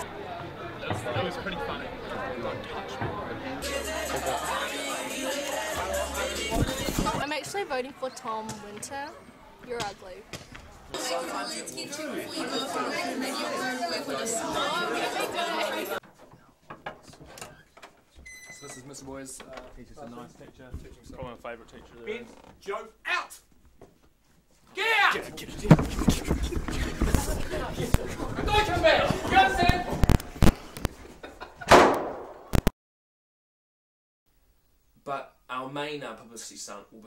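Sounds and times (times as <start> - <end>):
teenagers chattering: 0.0 - 16.6, 24.8 - 30.8.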